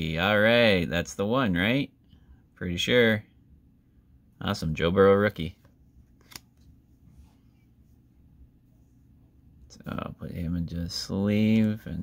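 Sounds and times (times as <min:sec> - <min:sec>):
cards being handled: 0:05.6 - 0:06.8
card stock click: 0:06.2 - 0:06.5.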